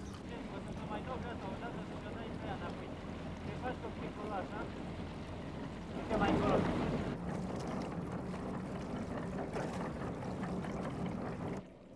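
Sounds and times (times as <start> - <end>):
boat engine humming: 0.0 - 11.9.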